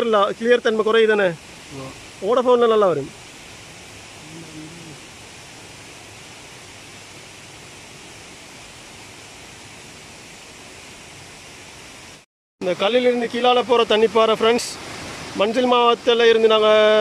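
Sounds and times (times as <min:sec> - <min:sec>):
outdoor background hiss: 0:00.0 - 0:17.0.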